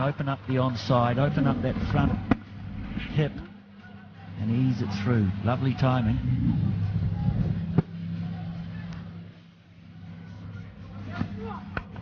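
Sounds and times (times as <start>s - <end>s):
crowd murmuring: 0.0s - 12.0s
steady low hum: 0.0s - 12.0s.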